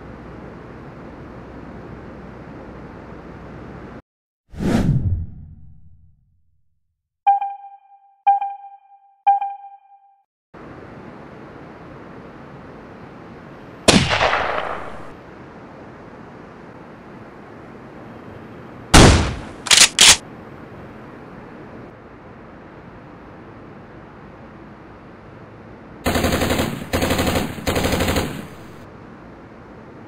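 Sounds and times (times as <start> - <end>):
rifle shot with echo: 13.9 - 15.1, 19.0 - 20.2
machine-gun bursts: 19.7 - 20.2, 26.1 - 28.8.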